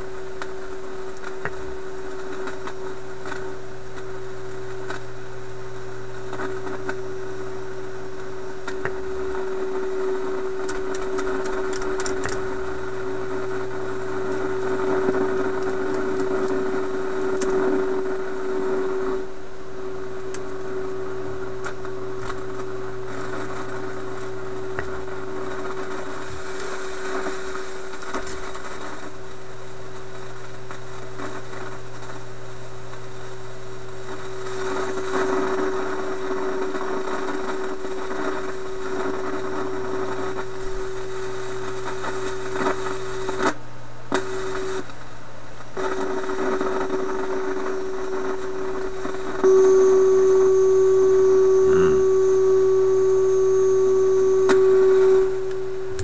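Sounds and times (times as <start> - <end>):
radio static hiss: 0.0 - 56.0
radio loudspeaker steady tone: 0.1 - 28.3, 34.0 - 43.5, 45.8 - 56.0
low hum: 49.4 - 56.0.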